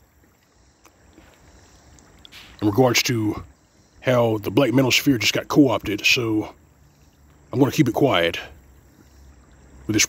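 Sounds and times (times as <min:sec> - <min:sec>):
high insect drone: 0:00.0 - 0:10.0
faint click: 0:00.2 - 0:02.6.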